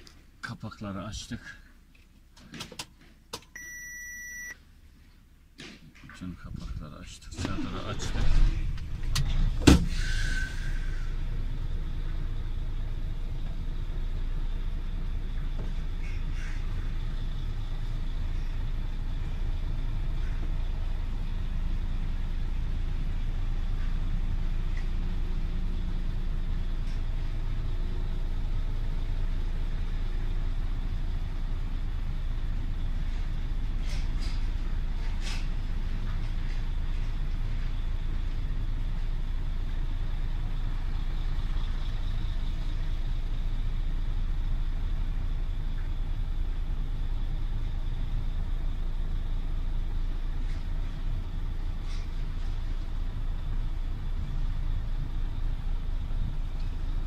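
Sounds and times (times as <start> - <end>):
diesel truck engine running: 0.0 - 57.0.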